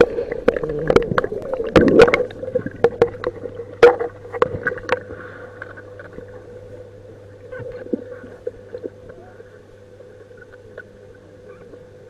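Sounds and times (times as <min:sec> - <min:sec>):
underwater clicks and knocks: 0:00.0 - 0:06.3
steady underwater hum: 0:00.0 - 0:12.0.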